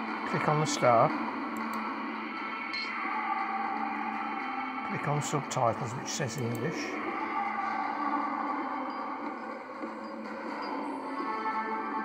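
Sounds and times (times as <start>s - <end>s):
soft soundtrack music through speakers: 0.0s - 12.0s.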